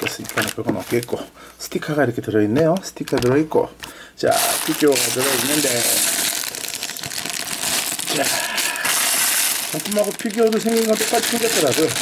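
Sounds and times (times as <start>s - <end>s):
plastic bags crinkling: 0.0s - 1.3s, 2.7s - 12.0s.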